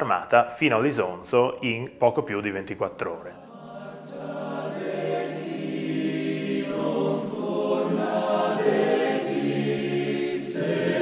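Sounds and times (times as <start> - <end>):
choral music: 3.0 - 11.0.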